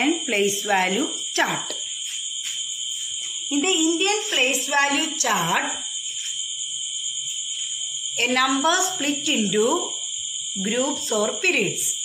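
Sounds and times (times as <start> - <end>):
faint high buzzing: 0.0 - 10.9.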